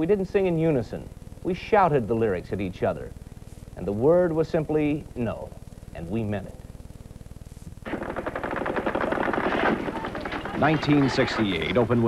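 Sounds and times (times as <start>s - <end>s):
machine-gun fire: 7.8s - 11.5s.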